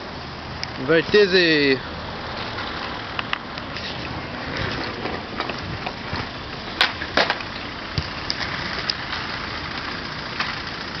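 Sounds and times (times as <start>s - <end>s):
skateboard wheels rolling on asphalt: 0.0s - 11.0s.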